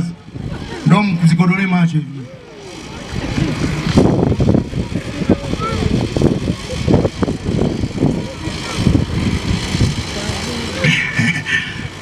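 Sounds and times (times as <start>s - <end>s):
man speaking over loudspeaker: 0.9s - 2.2s.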